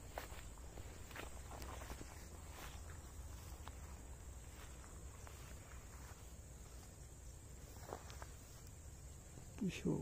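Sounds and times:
faint footsteps: 0.0 - 9.6
leaves and twigs rustling: 0.0 - 10.0.

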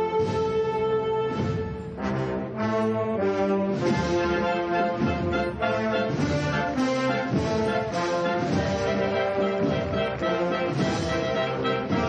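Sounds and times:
brass band playing slow march: 0.0 - 12.0.

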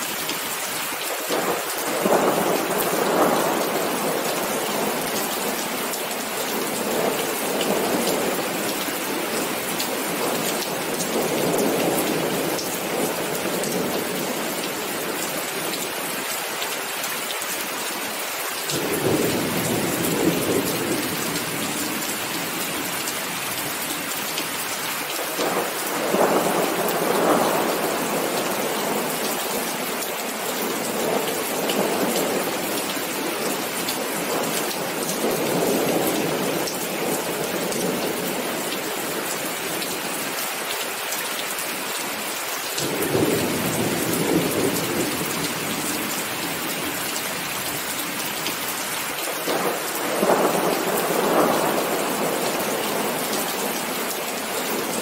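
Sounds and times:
heavy rain falling: 0.0 - 55.0.

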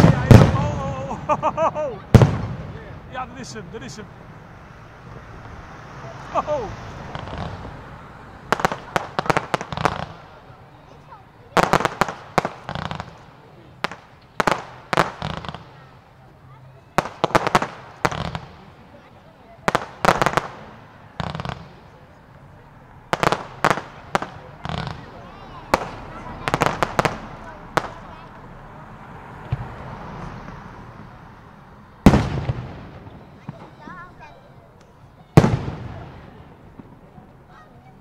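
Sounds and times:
fireworks aerial bursts and bangs: 0.0 - 38.0.

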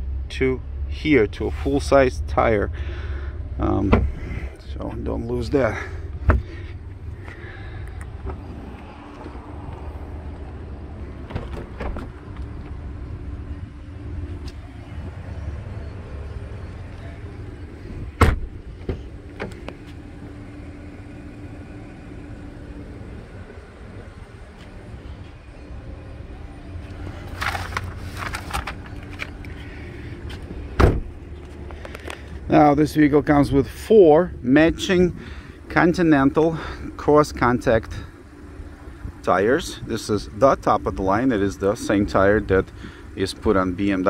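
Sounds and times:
low hum: 0.0 - 43.1
car rear hatch shutting: 18.0 - 19.9, 30.7 - 31.2.

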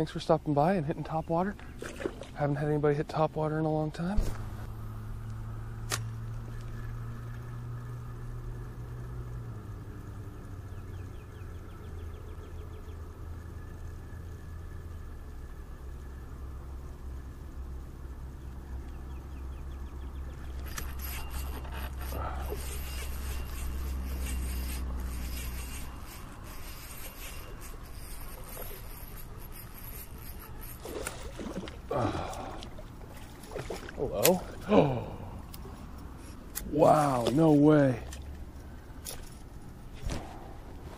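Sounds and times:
low hum: 0.0 - 40.9
fishing reel ticking: 20.1 - 31.4.

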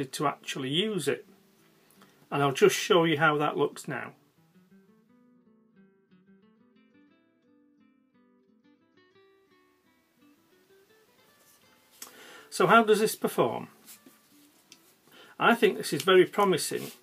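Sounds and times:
acoustic guitar plucked notes: 3.3 - 12.0.

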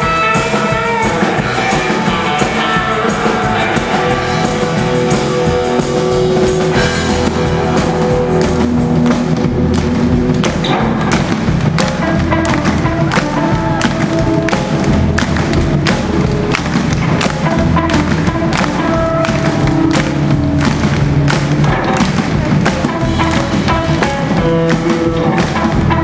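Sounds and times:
rock and roll band playing: 0.0 - 26.0
slapped double bass: 0.0 - 26.0
drum thumps: 8.1 - 26.0.

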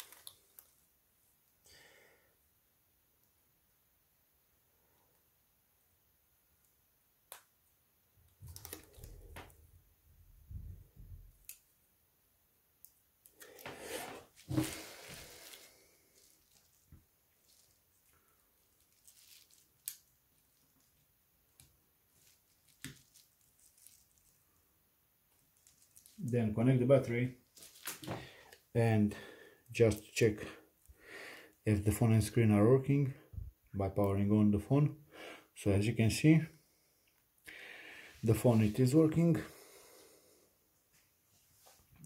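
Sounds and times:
rustling scrape: 13.6 - 17.9.

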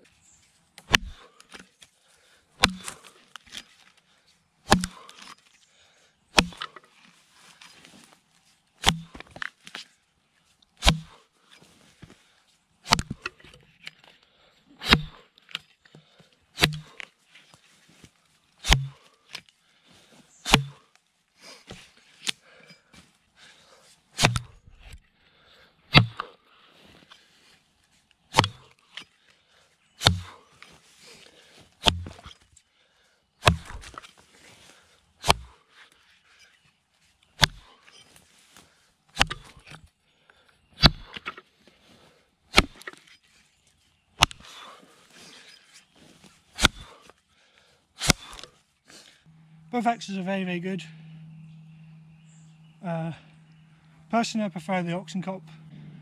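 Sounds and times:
axe chopping log: 0.8 - 1.6, 2.6 - 3.6, 4.7 - 5.4, 6.4 - 6.8, 8.8 - 9.8, 10.8 - 11.2, 12.8 - 13.4, 14.8 - 15.2, 16.6 - 17.0, 18.6 - 19.1, 20.5 - 20.8, 24.2 - 25.0, 25.9 - 26.3, 28.3 - 28.7, 30.0 - 30.4, 31.8 - 32.4, 33.4 - 34.1, 35.2 - 35.6, 37.4 - 37.7, 39.1 - 39.9, 40.8 - 41.4, 42.5 - 43.1, 44.2 - 44.7, 46.6 - 47.0, 48.0 - 48.5.

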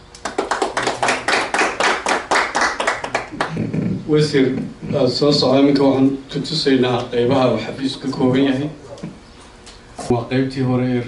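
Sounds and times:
people clapping: 0.2 - 3.8.

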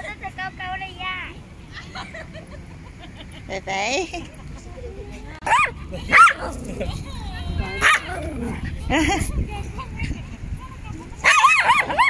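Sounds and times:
small dogs barking: 5.4 - 6.9, 7.7 - 8.8, 11.2 - 12.0.

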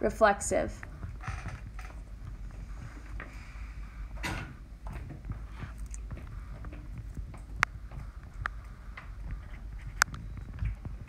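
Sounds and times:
low background rumble: 0.0 - 11.0
microphone hum: 0.7 - 11.0
stylus tapping and scratching: 0.8 - 3.4, 4.8 - 11.0.

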